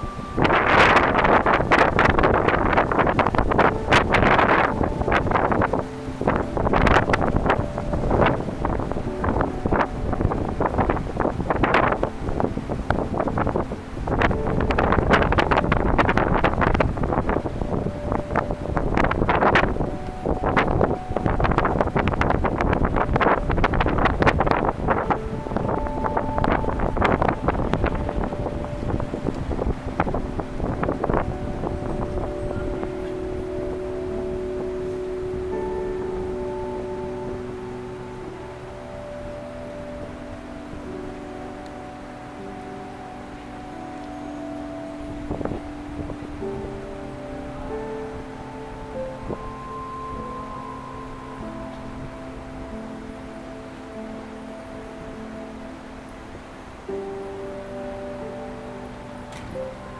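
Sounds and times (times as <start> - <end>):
ambient music: 0.0 - 59.9
wind buffeting microphone: 0.0 - 59.9.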